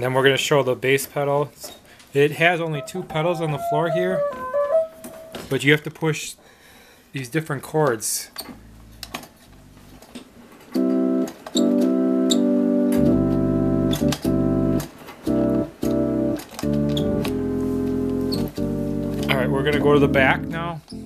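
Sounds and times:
organ sustained chords: 2.5 - 5.5, 10.8 - 21.0.

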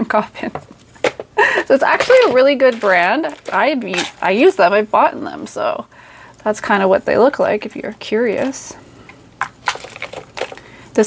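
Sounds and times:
plastic cases clicking and crinkling: 1.9 - 4.3, 9.4 - 10.7.

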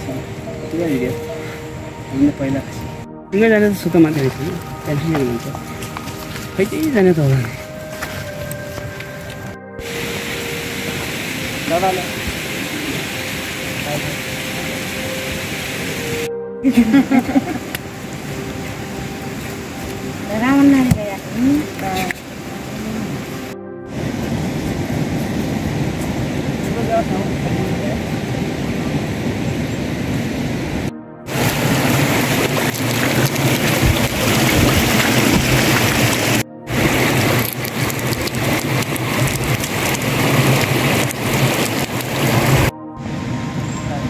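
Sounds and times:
water running over stony path: 0.0 - 24.1, 31.3 - 42.7
steady rain falling: 0.0 - 43.8.

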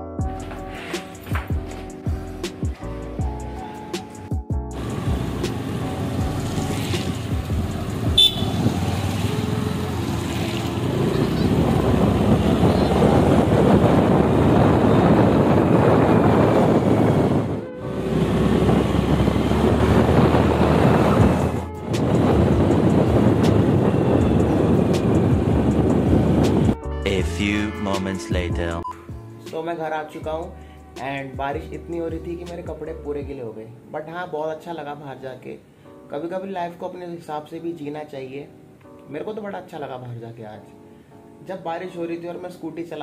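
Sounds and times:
road noise on wet road: 4.8 - 23.3
rushing wind: 4.8 - 26.8.

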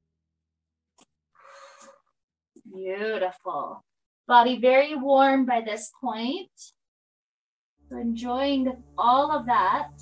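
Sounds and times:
short breathy exhale: 1.4 - 2.1.

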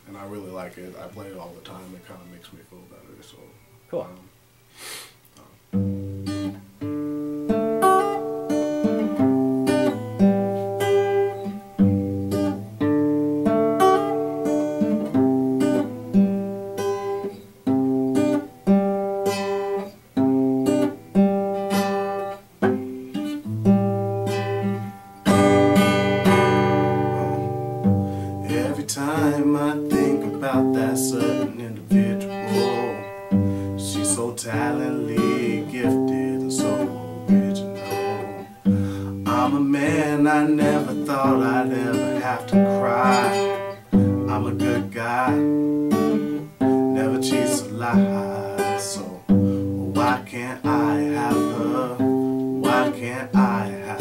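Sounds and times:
solo acoustic guitar playing: 0.0 - 4.1, 5.6 - 54.0.

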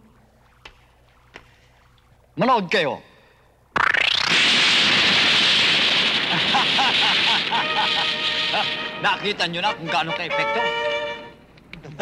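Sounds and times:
explosion blast: 3.8 - 9.5
loud hissing rush: 4.3 - 9.2.

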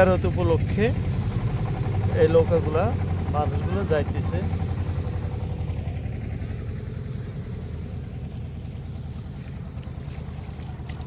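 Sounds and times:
boat diesel engine chugging: 0.0 - 11.0.

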